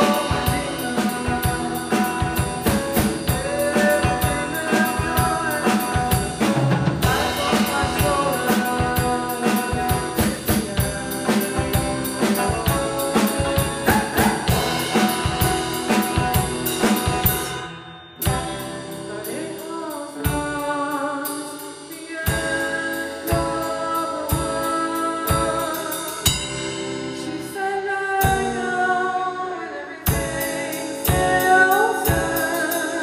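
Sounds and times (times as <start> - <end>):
drum kit playing a steady beat: 0.0 - 28.8, 30.0 - 33.0
electric guitar: 0.0 - 33.0.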